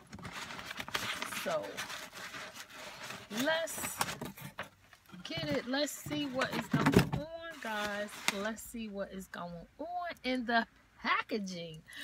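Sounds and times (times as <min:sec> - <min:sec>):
cardboard box and paper rustling: 0:00.0 - 0:08.6.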